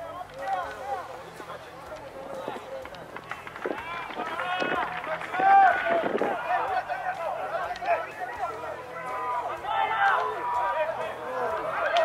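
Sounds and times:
low outdoor background: 0.0s - 12.0s
people shouting: 3.5s - 12.0s.

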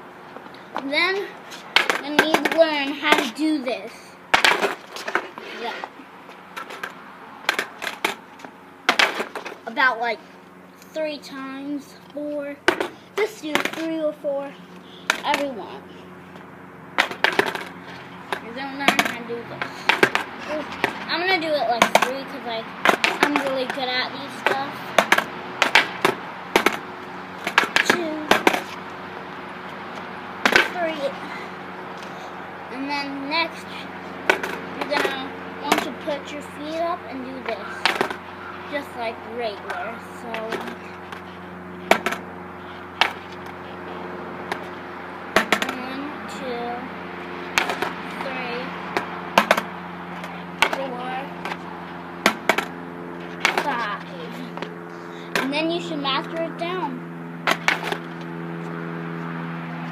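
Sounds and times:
steady low hum: 0.0s - 59.9s
skateboard clacking on concrete: 0.8s - 3.4s, 4.3s - 5.9s, 8.9s - 9.5s, 13.5s - 13.9s, 15.1s - 15.5s, 17.0s - 17.7s, 18.3s - 26.8s, 27.4s - 28.8s, 34.3s - 36.1s, 37.8s - 38.2s, 45.4s - 46.0s, 53.4s - 54.0s.

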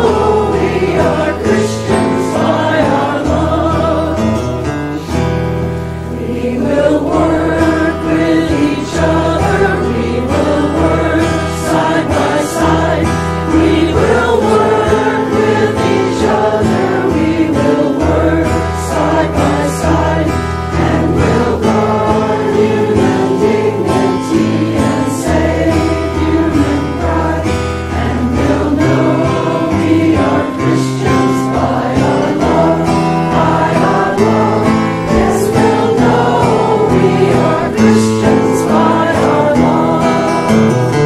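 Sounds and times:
group singing a hymn: 0.0s - 41.0s
sustained instrumental bass notes: 0.0s - 41.0s.

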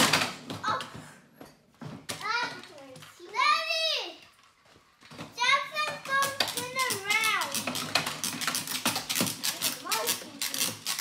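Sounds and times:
toy cars clicking and rattling: 2.1s - 11.0s.

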